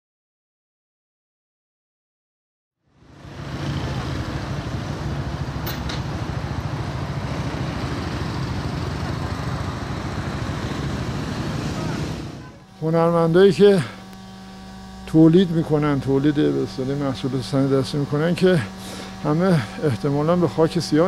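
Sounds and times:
city street traffic: 2.9s - 21.0s
low engine hum: 3.0s - 21.0s.

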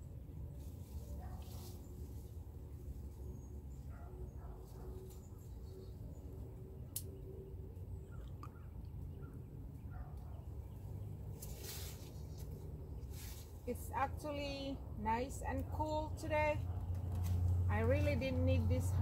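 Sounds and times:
steady low rumble: 0.0s - 19.0s
leaves rustling: 0.4s - 3.9s, 4.6s - 6.0s, 11.0s - 14.6s.

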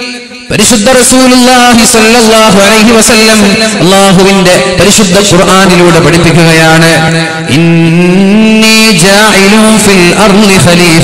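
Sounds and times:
man chanting melodic recitation: 0.0s - 11.0s.

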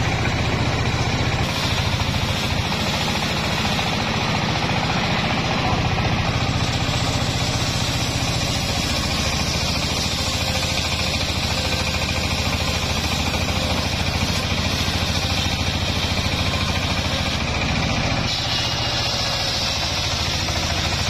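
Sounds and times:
diesel engine running: 0.0s - 21.0s
circular saw ripping wood: 1.4s - 21.0s.

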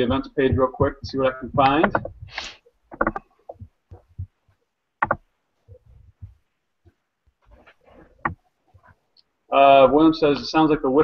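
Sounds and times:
mouse and keyboard clicks: 1.6s - 4.0s, 5.0s - 5.2s.

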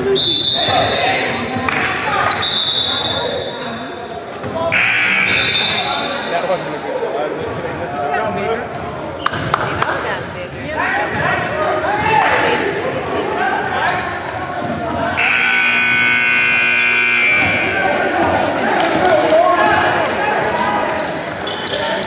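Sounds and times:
scoreboard buzzer: 4.8s - 6.0s, 15.2s - 17.8s.

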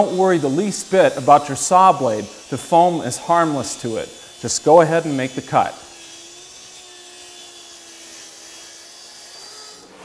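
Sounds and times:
track saw cutting plywood: 0.0s - 10.0s.

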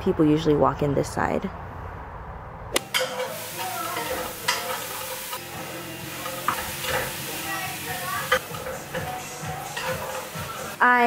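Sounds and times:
food sizzling in a pan: 2.8s - 11.0s
utensil clinking against pan: 2.9s - 10.5s.

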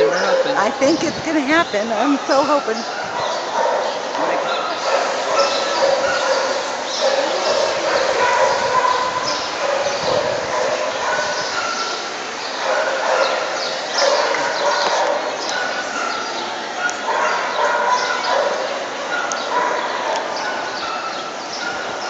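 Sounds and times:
dogs barking: 0.0s - 1.0s, 2.0s - 22.0s
people talking: 0.0s - 2.9s, 4.2s - 8.7s.

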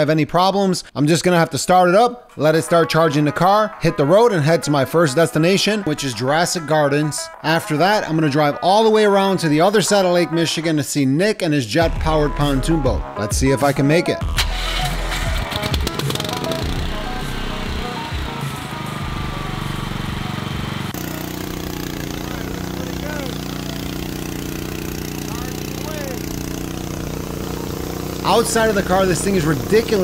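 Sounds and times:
generator engine running: 14.3s - 30.0s.

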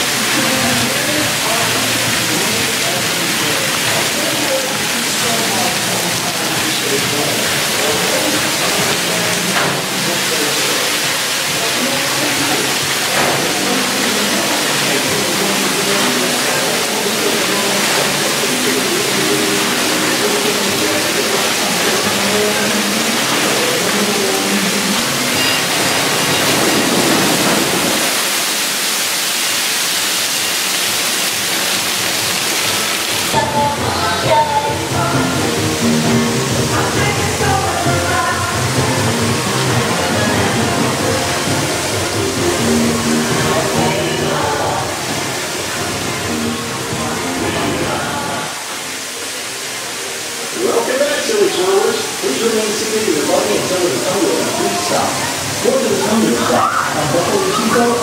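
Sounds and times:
faint voices: 0.0s - 28.2s, 33.3s - 58.0s
background music: 11.1s - 27.6s, 33.3s - 58.0s.

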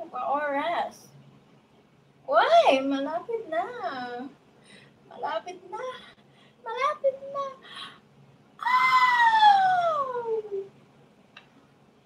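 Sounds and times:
woman's drawn-out cry: 8.6s - 10.6s.

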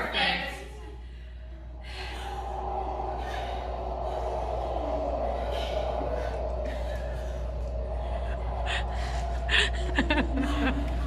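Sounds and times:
low hum: 0.0s - 11.0s
gasping breaths: 0.9s - 11.0s.

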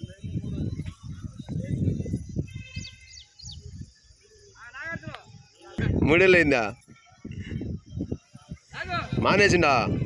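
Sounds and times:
bird chirping: 0.0s - 8.7s.

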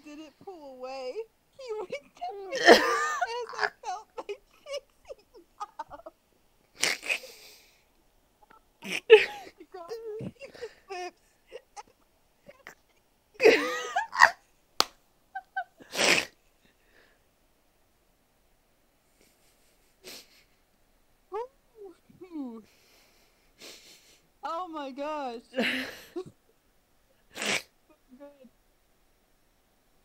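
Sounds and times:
person laughing hard: 1.6s - 6.1s, 8.8s - 11.9s, 13.4s - 14.4s, 15.4s - 16.2s.

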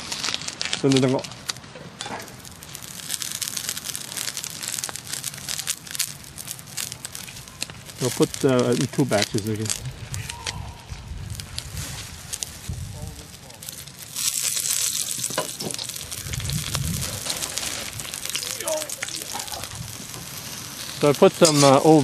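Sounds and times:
onions sizzling in a wok: 0.0s - 22.0s.

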